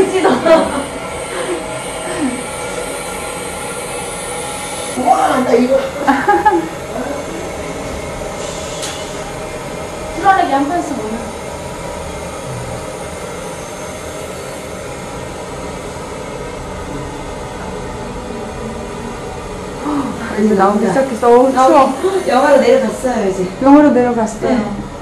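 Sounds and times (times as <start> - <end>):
chilling air flow hiss: 0.0 - 25.0.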